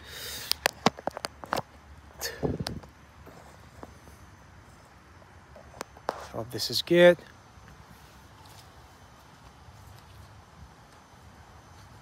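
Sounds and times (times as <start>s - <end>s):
scuff: 8.0s - 10.4s.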